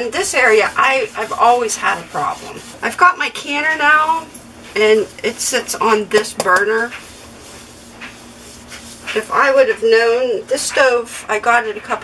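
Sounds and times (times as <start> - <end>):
scrubbing pad swishing on cooktop: 0.0 - 10.3.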